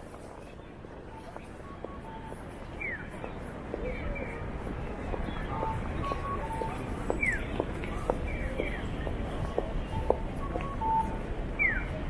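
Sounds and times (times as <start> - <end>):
street murmur: 0.0 - 12.0.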